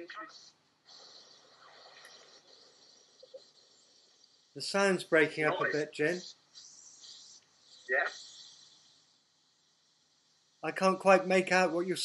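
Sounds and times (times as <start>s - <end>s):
faint high hiss: 0.9s - 12.0s.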